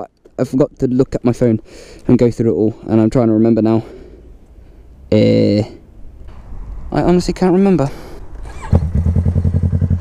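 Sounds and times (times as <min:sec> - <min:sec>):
motorcycle engine revving: 0:08.4 - 0:10.0.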